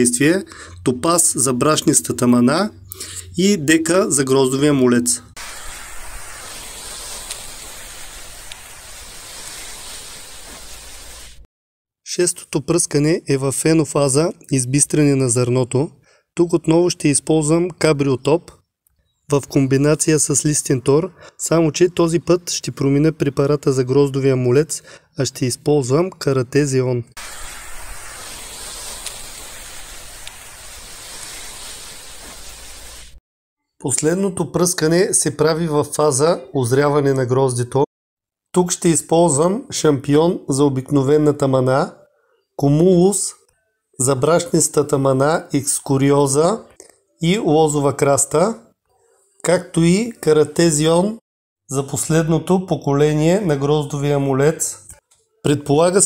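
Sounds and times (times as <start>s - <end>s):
steady outdoor hiss: 3.3s - 11.4s, 27.2s - 33.2s.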